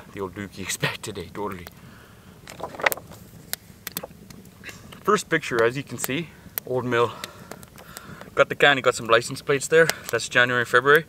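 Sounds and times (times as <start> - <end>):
stiff paper rustling: 2.5 - 3.2.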